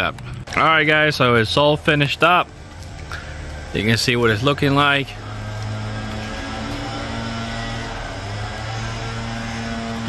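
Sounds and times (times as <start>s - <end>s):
steady low hum: 1.2s - 10.0s.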